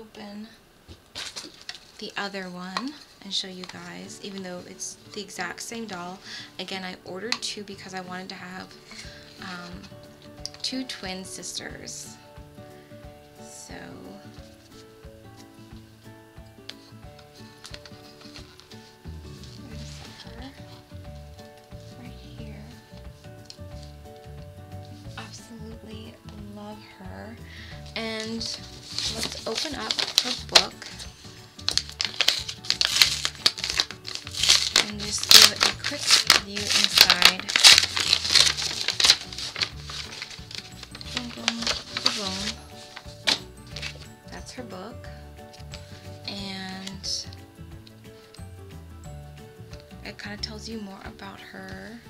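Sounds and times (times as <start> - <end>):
faint background music: 0.0 - 52.0
packaging crinkling: 1.1 - 2.0, 17.2 - 20.8, 27.9 - 44.1.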